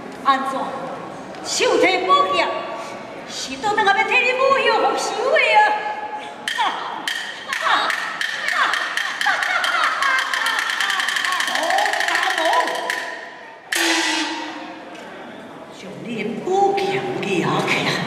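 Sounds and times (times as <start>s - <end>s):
wooden clapper strikes: 6.5s - 14.4s.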